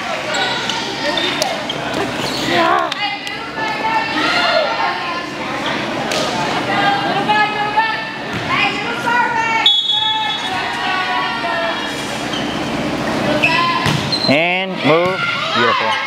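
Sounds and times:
voices calling out and chattering: 0.0s - 16.0s
shrill referee's whistle: 9.6s - 10.6s.

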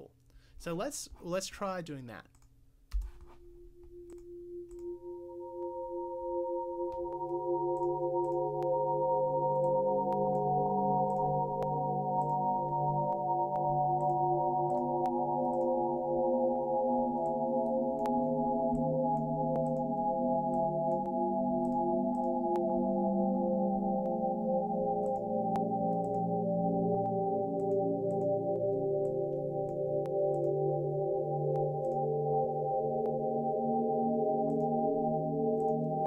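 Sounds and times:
synth droning pad: 4.3s - 36.0s.

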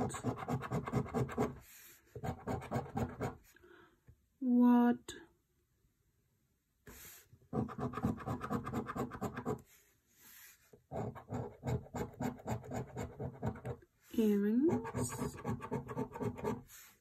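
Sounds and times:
coin scratching scratch card: 0.0s - 1.6s, 2.2s - 3.4s, 7.5s - 9.6s, 10.9s - 13.8s, 14.7s - 16.7s.

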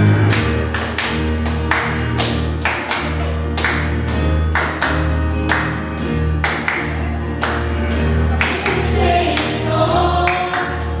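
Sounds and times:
low musical accompaniment: 0.0s - 11.0s
sharp hand claps: 0.2s - 7.8s
people singing together: 8.2s - 11.0s.

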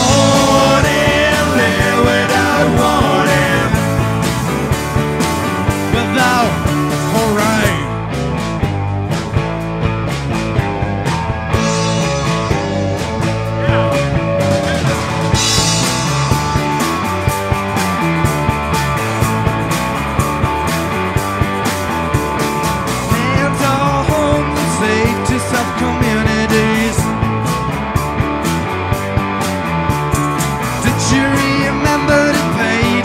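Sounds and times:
rock band playing: 0.0s - 33.0s.

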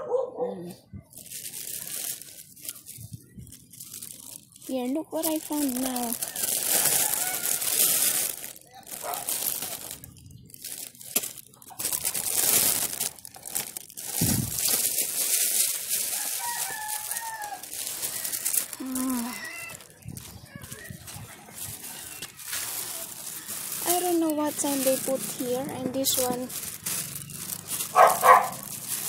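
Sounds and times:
plastic bag crinkling: 1.1s - 29.0s
faint high falling calls: 5.9s - 8.3s, 16.1s - 19.9s.

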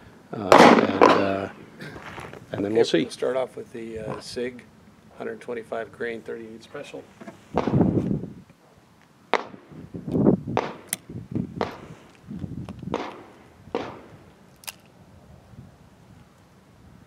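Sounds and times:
gunshots with echoing tails: 0.5s - 1.3s, 7.6s - 7.9s, 9.3s - 9.7s, 10.6s - 10.9s, 11.6s - 12.0s, 12.9s - 14.2s
sharp metallic clicks: 12.9s - 14.9s.

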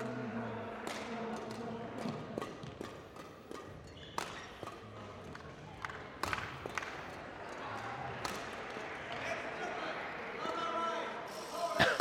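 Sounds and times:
murmur of voices: 0.0s - 12.0s
rackets striking shuttlecock: 2.4s - 4.9s.

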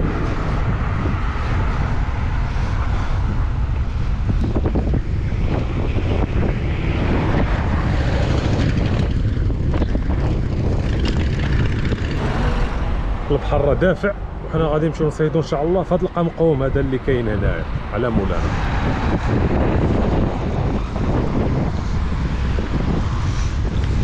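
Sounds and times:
road noise: 0.0s - 24.0s
traffic noise: 0.0s - 24.0s
wind buffeting microphone: 0.0s - 24.0s.

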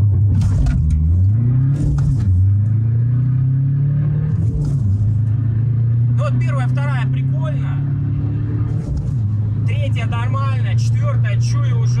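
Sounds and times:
diesel car engine accelerating: 0.0s - 12.0s.

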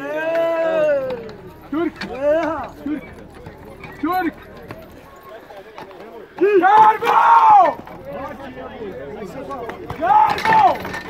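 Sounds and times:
men shouting: 0.0s - 3.1s, 6.4s - 8.4s, 9.8s - 11.0s
hooves stamping on dry dirt: 0.2s - 11.0s.

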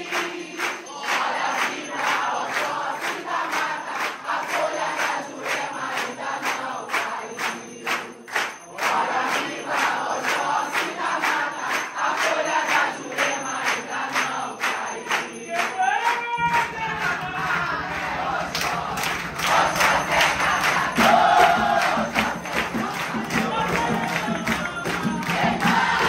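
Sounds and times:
congregation singing: 0.0s - 26.0s
rhythmic handclapping: 0.0s - 26.0s.

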